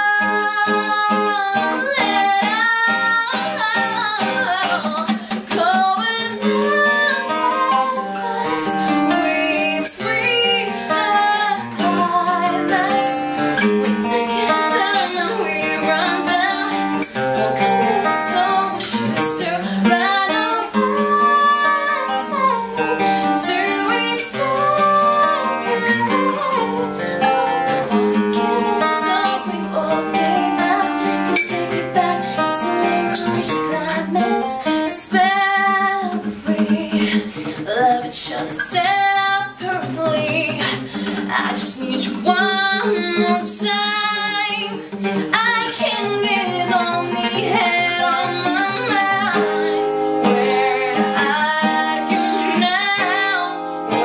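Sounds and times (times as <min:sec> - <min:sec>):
acoustic guitar strumming: 0:00.0 - 0:54.0
woman singing: 0:00.0 - 0:54.0.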